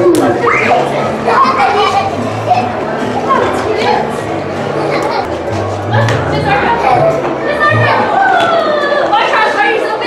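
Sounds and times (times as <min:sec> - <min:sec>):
children calling out: 0:00.0 - 0:04.1, 0:05.9 - 0:10.0.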